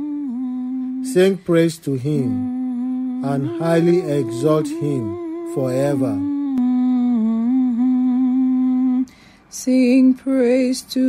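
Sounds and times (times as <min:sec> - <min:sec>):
person humming a held note: 0:00.0 - 0:09.0.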